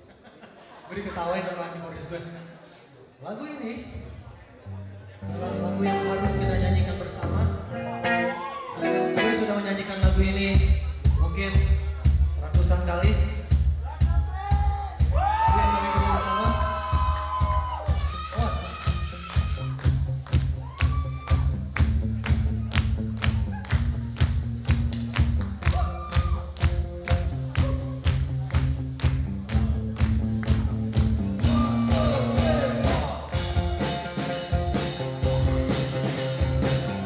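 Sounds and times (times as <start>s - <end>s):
bass guitar: 4.8s - 37.0s
electric guitars: 5.2s - 9.9s, 18.8s - 37.0s
drum beat: 10.0s - 37.0s.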